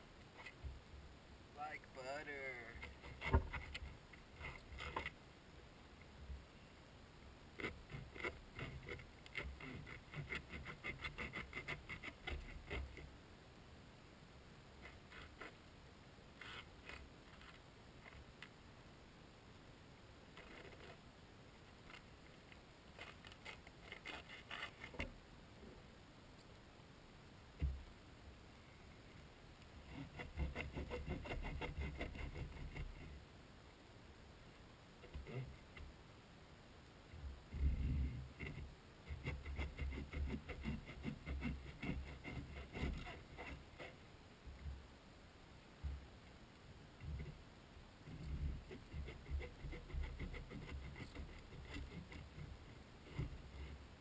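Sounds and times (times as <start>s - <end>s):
hand saw scraping strokes: 7.9s - 12.9s, 29.9s - 33.0s.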